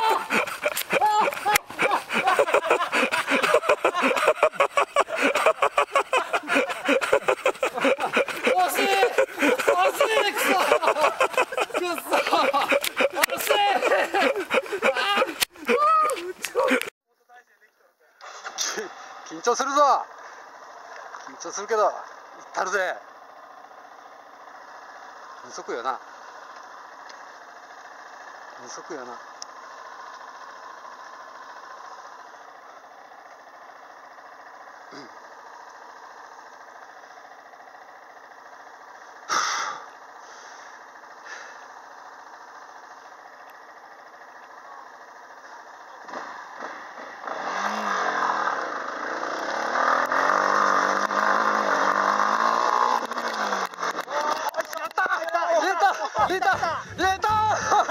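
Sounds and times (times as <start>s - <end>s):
distant voices: 0.0s - 16.9s, 39.8s - 57.9s
motorcycle engine revving: 0.0s - 16.9s, 18.2s - 57.9s.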